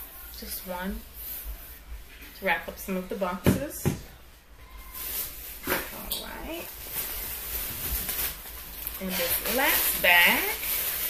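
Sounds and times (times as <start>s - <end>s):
plastic bag rustling: 4.5s - 11.0s.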